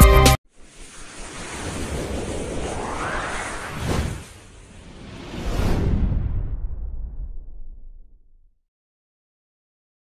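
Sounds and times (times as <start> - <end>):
whoosh with rising sweep: 0.5 - 8.2.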